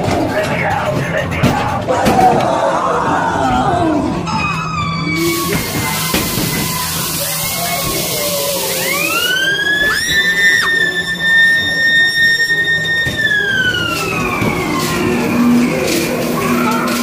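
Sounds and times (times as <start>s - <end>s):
siren-like wail: 2.4s - 17.0s.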